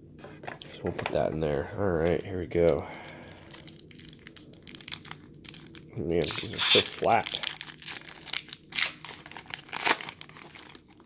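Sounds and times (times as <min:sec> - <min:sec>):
foil wrapper crinkling and tearing: 0:01.8 - 0:11.0.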